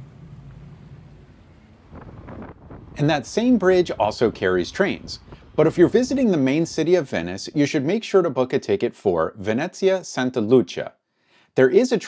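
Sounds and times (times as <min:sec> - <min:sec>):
boat engine humming: 0:00.0 - 0:06.3
outdoor background noise: 0:00.0 - 0:09.4.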